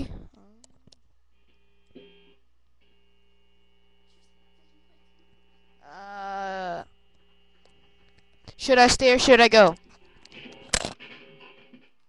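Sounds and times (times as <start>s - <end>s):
low steady hum: 0.0s - 10.7s.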